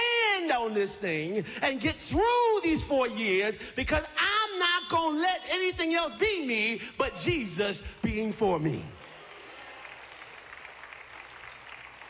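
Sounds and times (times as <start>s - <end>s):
faint applause: 8.8s - 12.0s.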